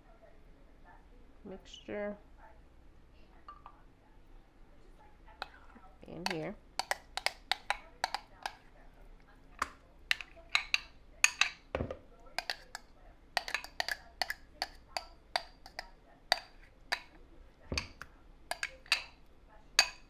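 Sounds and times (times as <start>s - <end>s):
utensil knocking against bowl: 5.4s - 8.6s, 9.6s - 19.1s.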